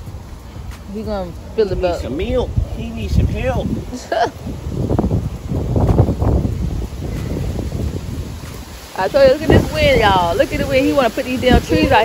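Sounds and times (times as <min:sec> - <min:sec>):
plant leaves rustling: 0:00.0 - 0:12.0
wind buffeting microphone: 0:00.0 - 0:12.0.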